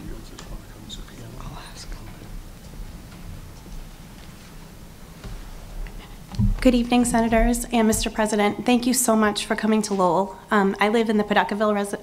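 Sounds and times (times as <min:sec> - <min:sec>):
faint whispering: 0:00.0 - 0:02.3
low murmured talk: 0:00.0 - 0:02.4
low room hum: 0:00.0 - 0:12.0.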